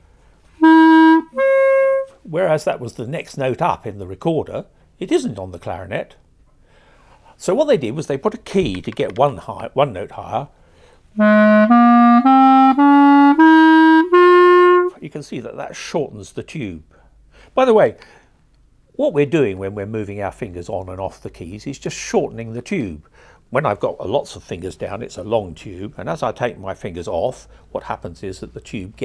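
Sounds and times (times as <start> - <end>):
clarinet sustained notes: 0.6 - 2.3, 11.2 - 15.0.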